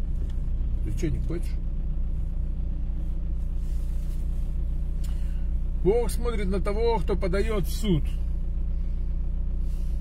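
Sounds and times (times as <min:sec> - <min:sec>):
car rumble: 0:00.0 - 0:10.0.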